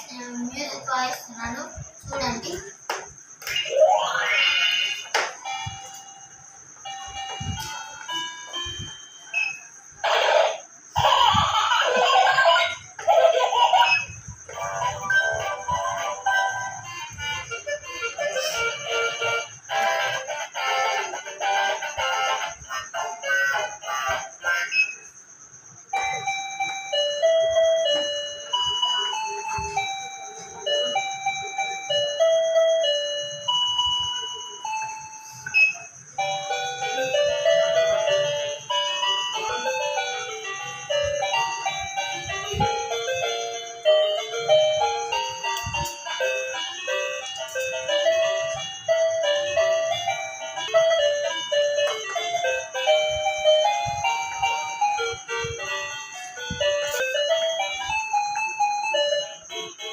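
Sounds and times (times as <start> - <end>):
toy keyboard melody: 3.4 - 59.9.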